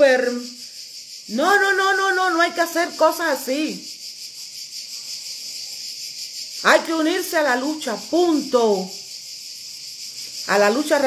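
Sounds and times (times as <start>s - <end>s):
high-pitched pulsing hiss: 0.0s - 11.0s.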